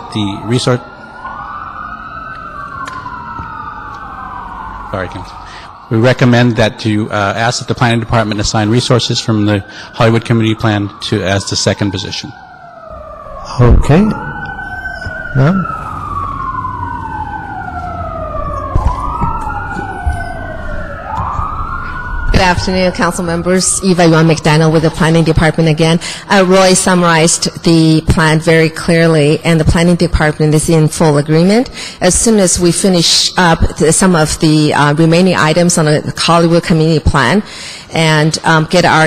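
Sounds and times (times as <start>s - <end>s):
emergency siren wailing: 0.0s - 39.0s.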